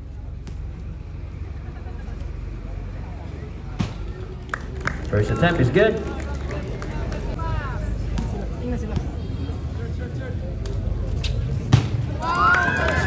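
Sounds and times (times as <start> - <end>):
crowd chattering: 0.0 - 13.0.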